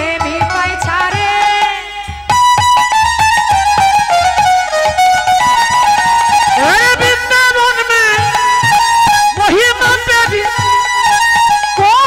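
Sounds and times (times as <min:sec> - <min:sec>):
melody instrument playing held notes: 0:03.0 - 0:12.0.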